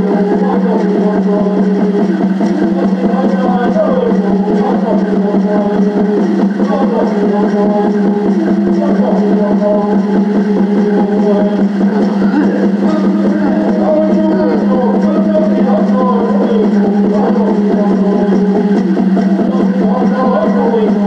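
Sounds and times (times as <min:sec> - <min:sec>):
man singing: 0:00.0 - 0:21.0
water drum beating: 0:00.0 - 0:21.0.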